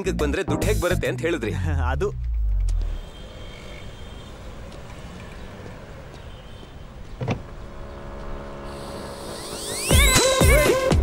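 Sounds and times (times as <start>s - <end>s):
low rumble of road traffic: 1.2s - 9.6s.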